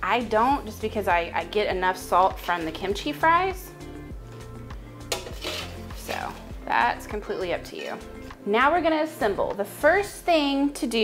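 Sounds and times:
background music: 0.0s - 11.0s
metal tongs clinking: 5.1s - 5.8s.

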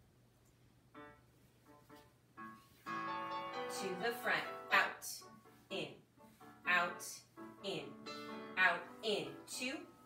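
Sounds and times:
solo piano music: 0.9s - 10.0s.

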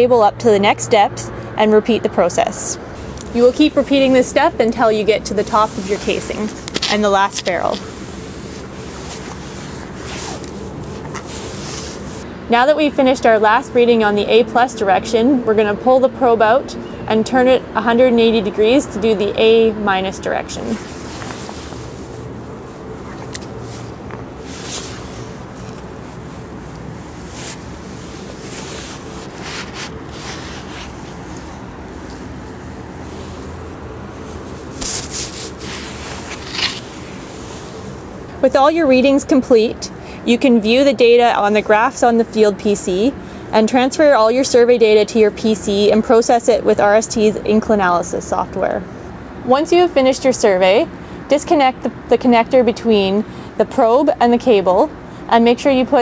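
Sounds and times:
low outdoor background noise: 0.0s - 56.0s
steady background hiss: 0.0s - 56.0s
cable rustling: 3.0s - 12.2s, 20.6s - 38.6s
metal probe scraping in casing: 34.8s - 37.1s.

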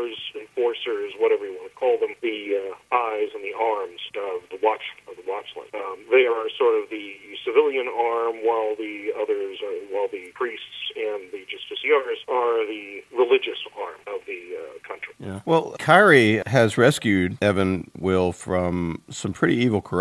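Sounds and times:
person talking over telephone line: 0.0s - 16.0s.

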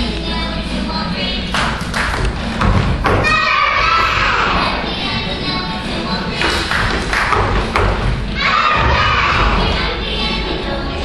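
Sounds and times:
music: 0.0s - 11.0s
children's feet thudding on wooden stage: 2.0s - 3.4s, 6.4s - 9.6s
singing: 3.2s - 11.0s.

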